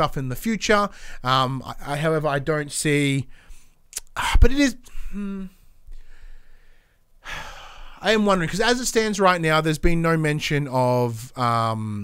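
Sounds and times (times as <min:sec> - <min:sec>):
man breathing into microphone: 0:00.9 - 0:01.2, 0:04.9 - 0:08.0.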